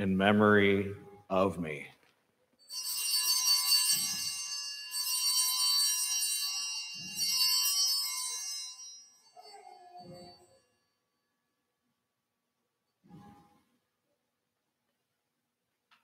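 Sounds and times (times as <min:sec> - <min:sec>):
small hand bells ringing: 0:02.6 - 0:11.3.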